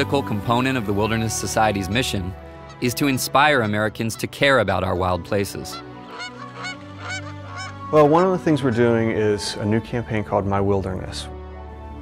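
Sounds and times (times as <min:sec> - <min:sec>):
swans calling: 0:00.8 - 0:09.6.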